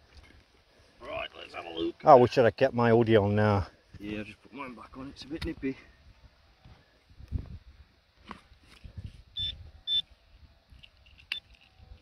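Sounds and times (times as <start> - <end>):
pinpointer high beeps: 9.4 - 10.1.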